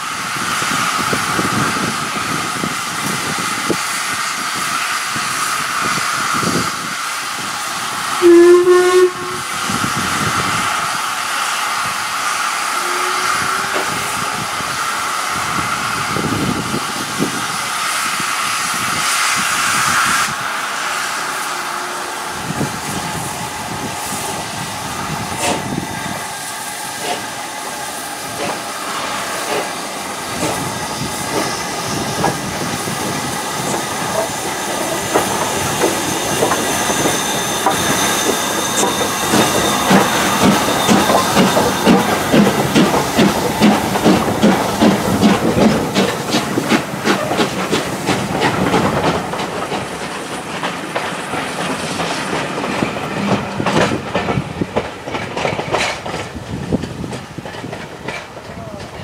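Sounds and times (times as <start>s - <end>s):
steam locomotive hissing steam: 0.0s - 59.0s
locomotive whistle blast: 8.2s - 9.6s, 12.6s - 14.8s
locomotive exhaust chuffs: 26.6s - 54.6s.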